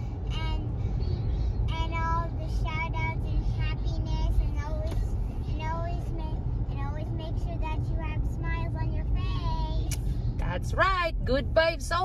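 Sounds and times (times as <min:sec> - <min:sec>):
car road noise: 0:00.0 - 0:12.0
child's sing-song voice: 0:01.6 - 0:10.1.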